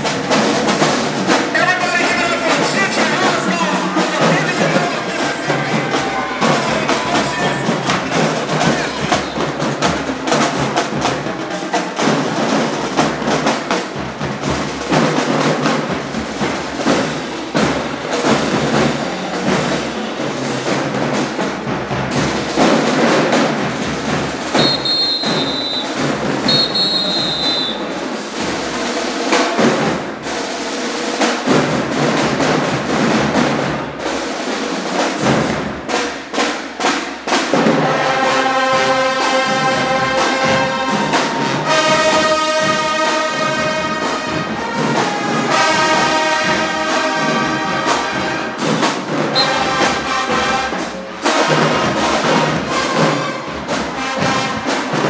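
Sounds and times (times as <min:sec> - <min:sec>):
brass section playing: 0:00.0 - 0:13.6, 0:24.4 - 0:29.0, 0:37.5 - 0:55.0
marching drumline cadence: 0:00.0 - 0:55.0
whistle blasts: 0:24.5 - 0:28.0, 0:49.3 - 0:49.9.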